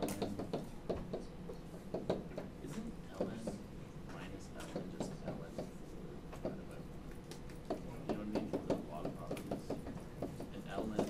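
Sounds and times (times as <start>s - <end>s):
stylus tapping on writing surface: 0.0s - 11.0s.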